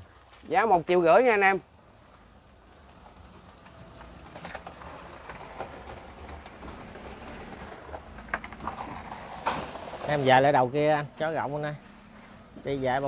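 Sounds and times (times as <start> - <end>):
rustles: 0.0 - 13.0.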